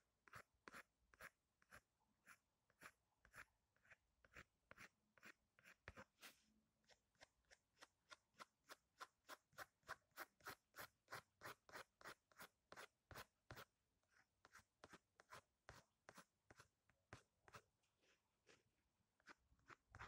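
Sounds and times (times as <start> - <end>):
pencil scratching on paper: 0.2 - 20.0.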